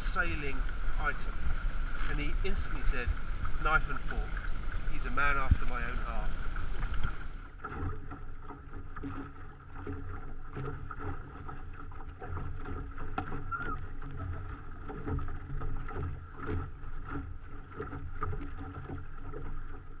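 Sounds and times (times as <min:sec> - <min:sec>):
wind rumble on microphone: 0:00.0 - 0:07.6
water slapping against boat hull: 0:00.0 - 0:20.0.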